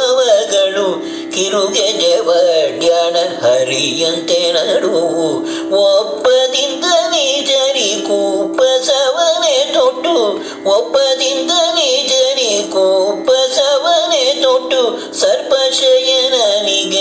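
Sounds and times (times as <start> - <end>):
man singing: 0.0 - 17.0.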